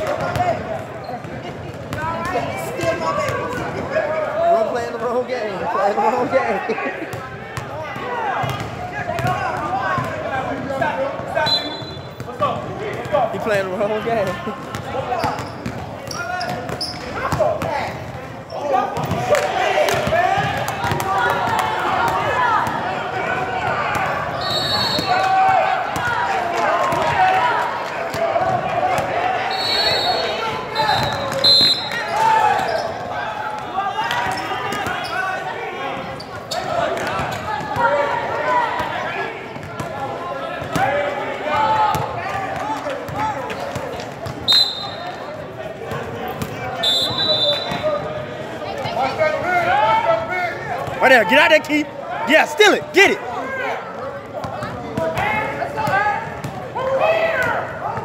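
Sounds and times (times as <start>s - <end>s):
chatter of players and spectators: 0.0s - 58.0s
basketball bouncing on court floor: 0.1s - 0.5s, 8.4s - 10.1s, 19.0s - 19.3s, 19.9s - 22.8s, 41.9s - 44.4s
referee whistle blasts: 11.4s - 12.2s, 24.4s - 25.2s, 29.5s - 32.2s, 44.5s - 45.2s, 46.8s - 48.0s.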